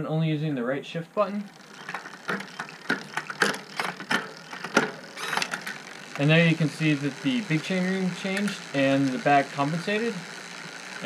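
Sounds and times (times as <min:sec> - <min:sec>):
bike chain whir: 0:00.6 - 0:11.0
bike gear shifting clicks: 0:01.6 - 0:11.0.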